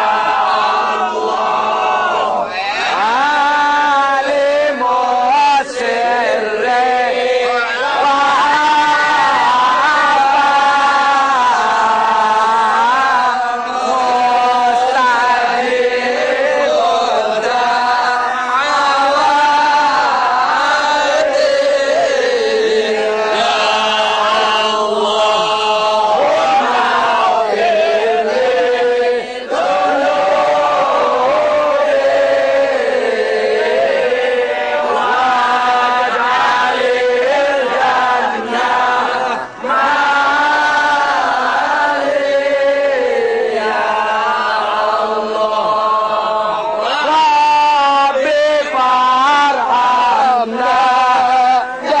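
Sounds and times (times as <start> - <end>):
men chanting together: 0.0 - 52.0.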